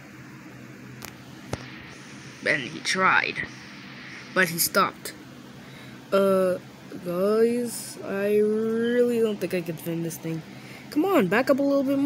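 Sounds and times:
room hiss: 0.0s - 11.3s
faint steady hum: 0.0s - 12.0s.

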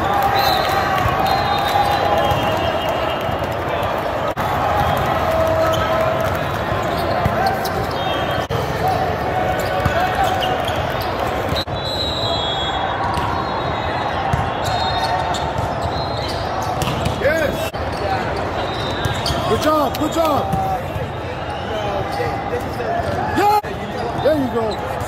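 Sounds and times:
many voices echoing in hall: 0.0s - 25.0s
sneakers squeaking on court: 4.8s - 11.8s, 13.0s - 22.4s.

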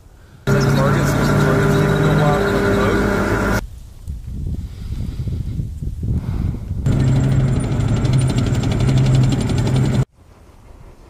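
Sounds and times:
tank engine hum: 0.5s - 3.6s, 6.9s - 11.0s.

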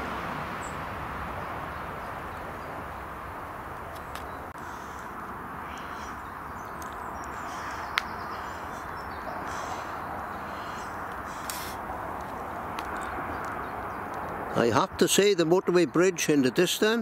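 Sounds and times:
distant motorway traffic: 0.0s - 17.0s.

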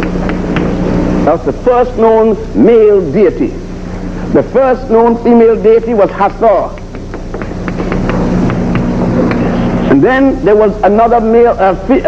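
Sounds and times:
chalk tapping on chalkboard: 0.0s - 0.7s, 6.2s - 9.5s
low hum and hiss: 0.0s - 12.0s.

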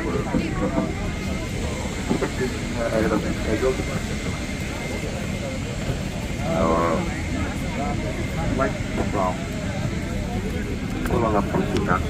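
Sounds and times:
airliner cabin hum: 0.0s - 12.0s
passengers talking: 0.0s - 12.0s.

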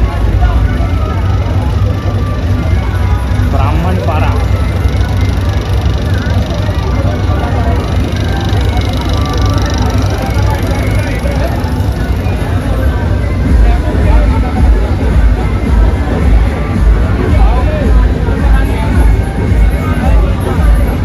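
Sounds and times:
voices: 0.0s - 21.0s
dj music with heavy bass: 13.4s - 21.0s.

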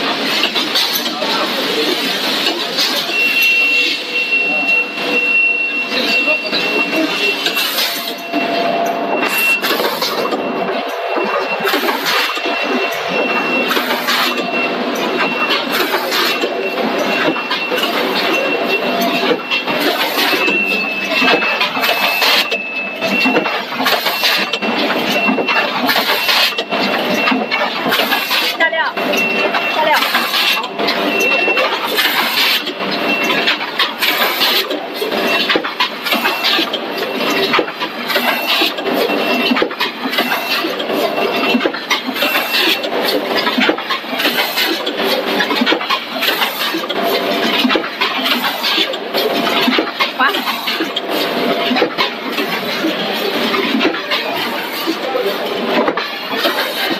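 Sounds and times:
packing machine clatter: 0.0s - 56.9s
high steady tone: 2.7s - 34.3s.

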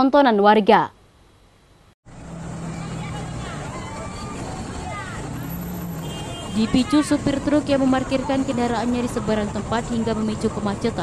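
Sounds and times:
road traffic noise: 2.0s - 11.0s
truck engine running: 2.1s - 11.0s
people's raised voices: 2.6s - 8.6s.

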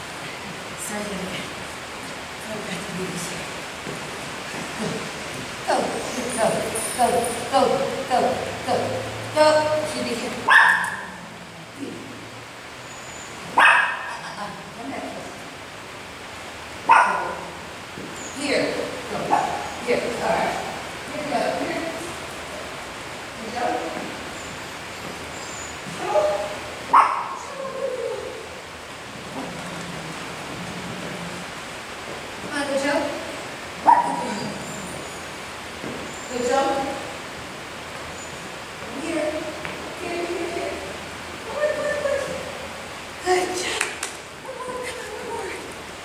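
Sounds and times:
small dog barking: 10.5s - 11.2s, 13.5s - 14.2s, 16.8s - 17.5s, 19.3s - 19.8s, 26.0s - 27.5s, 33.8s - 34.3s.

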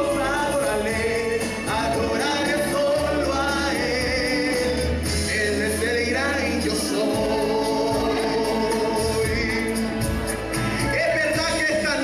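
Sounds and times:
congregation singing: 0.0s - 10.2s.

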